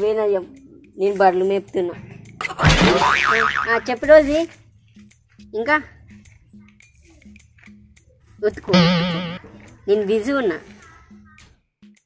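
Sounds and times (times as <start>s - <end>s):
cartoon boing sound effect: 2.7s - 3.7s, 8.7s - 9.5s.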